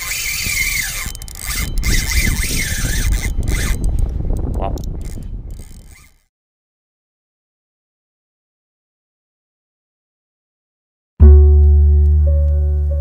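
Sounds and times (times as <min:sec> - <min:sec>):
fishing reel whirring: 0:00.0 - 0:06.3.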